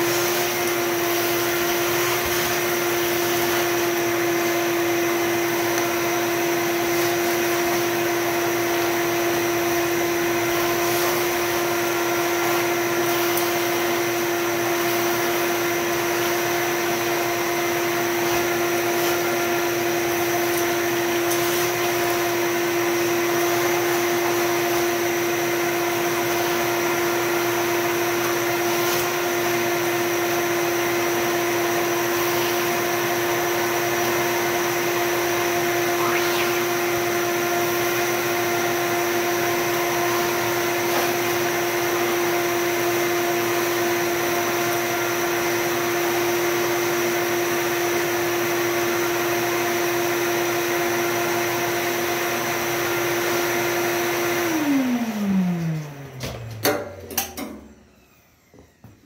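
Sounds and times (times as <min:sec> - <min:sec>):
vacuum motor spinning down: 0:00.0 - 0:56.6, 0:57.6 - 0:59.0
shop vacuum running: 0:00.0 - 0:59.0.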